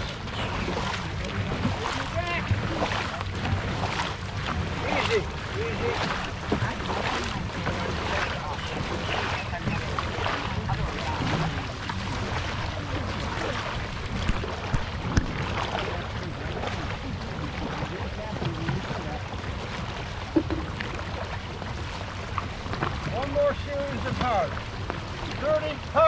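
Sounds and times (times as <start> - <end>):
faint voices: 0.0 - 21.2
paddles stroking through water: 0.0 - 26.0.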